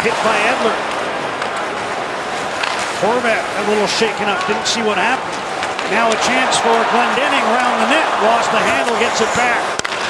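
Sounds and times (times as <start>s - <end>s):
crowd noise: 0.0s - 10.0s
skates on ice: 0.1s - 10.0s.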